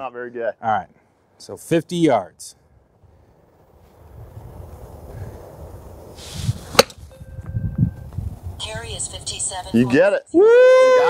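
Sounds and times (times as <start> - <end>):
wind rumble on microphone: 3.1 - 9.4
golf club swish: 6.1 - 7.1
golf club striking ball: 6.7 - 7.1.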